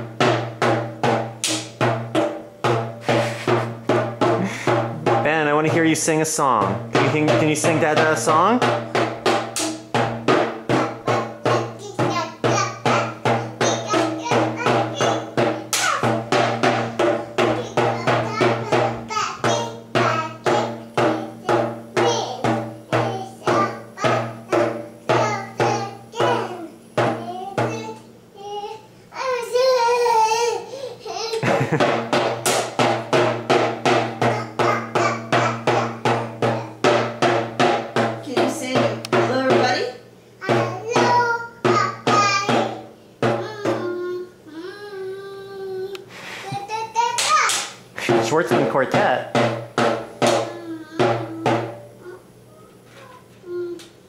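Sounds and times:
toy drum beaten with stick: 0.0 - 28.5, 31.4 - 44.2, 47.2 - 52.6.

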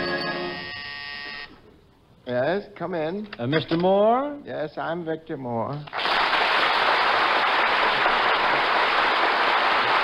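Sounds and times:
audience applauding: 5.9 - 10.0.

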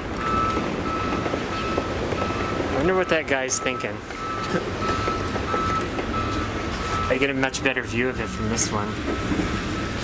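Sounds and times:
electronic warning beeps: 0.2 - 10.0.

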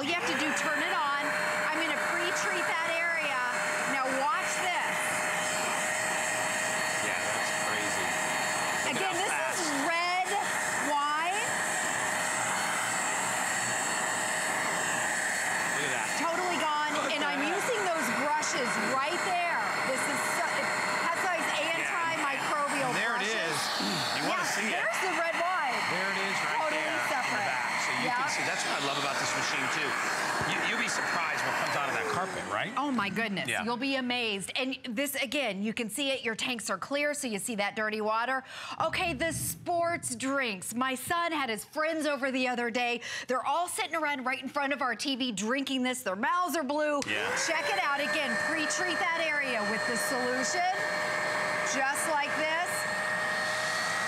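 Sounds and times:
carpet cleaner whining: 0.0 - 33.2, 47.0 - 54.0
nozzle sucking water: 11.5 - 32.4
voices talking: 15.6 - 33.7, 47.0 - 50.8.

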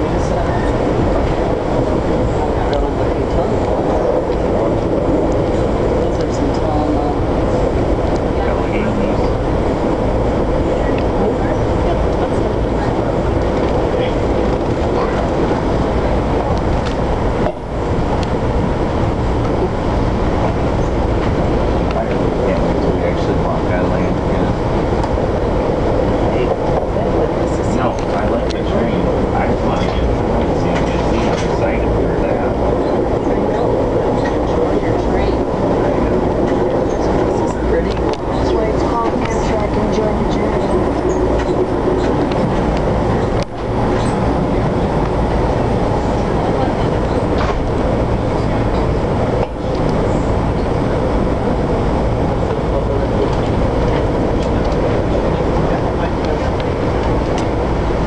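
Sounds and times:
passenger train rolling: 0.0 - 58.0.

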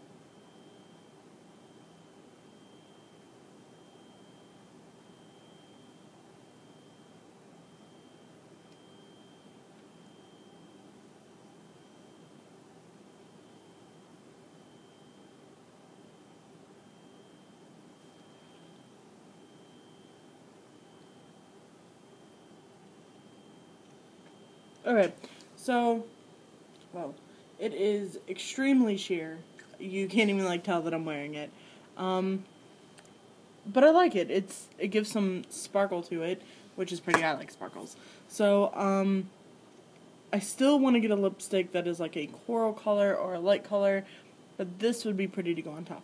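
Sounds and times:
faint high-pitched whine: 0.0 - 46.0
low recording hiss: 0.0 - 46.0.

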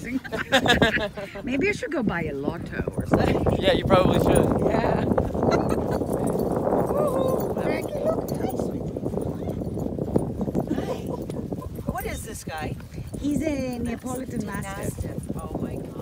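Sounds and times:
wind rumbling on microphone: 0.0 - 16.0
faint voices talking: 1.2 - 16.0.

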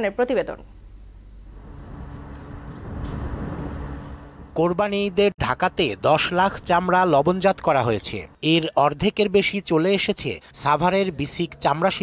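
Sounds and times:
traffic engine hum: 1.2 - 6.6.

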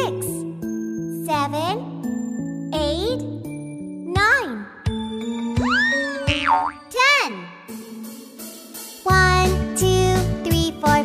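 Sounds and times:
children's background music: 0.0 - 11.0
cartoon boing sound effects: 5.6 - 6.9.

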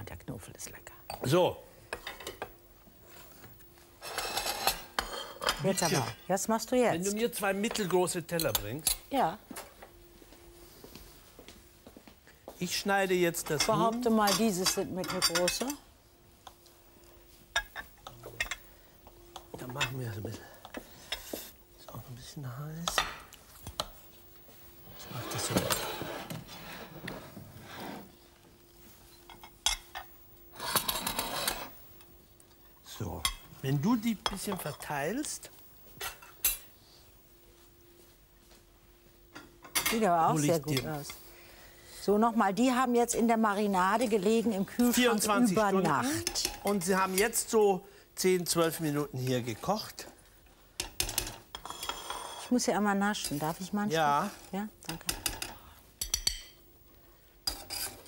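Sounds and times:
metal spatula scraping steel pot: 4.0 - 6.2, 51.5 - 52.6, 57.4 - 58.0
plates and cutlery clinking: 4.0 - 6.4, 13.3 - 15.8, 17.3 - 21.6, 25.2 - 27.4, 28.8 - 32.1, 33.2 - 35.0, 35.9 - 36.7, 50.8 - 52.5, 54.9 - 56.7.

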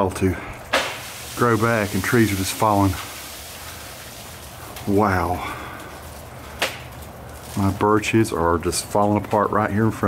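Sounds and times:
freezing rain patter: 0.0 - 10.0.

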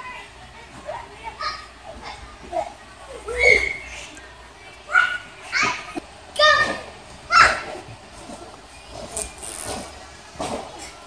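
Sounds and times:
children chattering and calling: 0.0 - 11.0.

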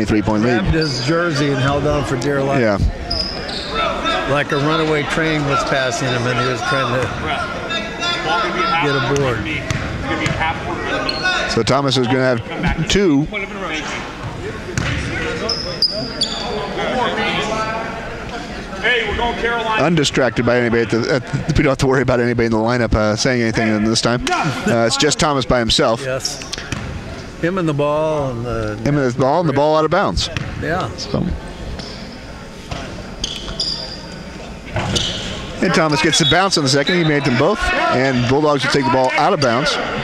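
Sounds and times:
voices chattering: 0.0 - 40.0
high squeaks: 3.1 - 3.8, 15.4 - 16.6, 33.2 - 34.2, 34.8 - 35.4.

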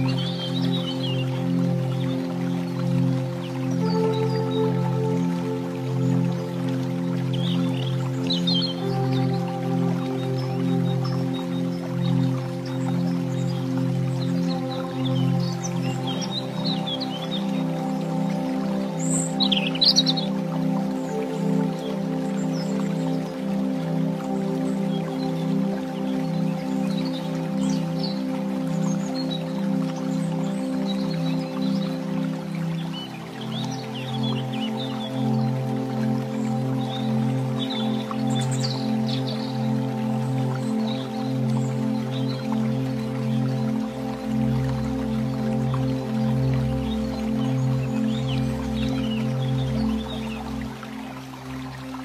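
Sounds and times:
calm new-age music chords: 0.0 - 52.0.

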